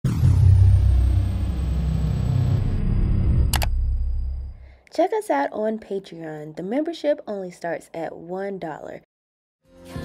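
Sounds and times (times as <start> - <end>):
high tone sliding down: 0.0 - 4.6
deep rumble: 0.0 - 4.7.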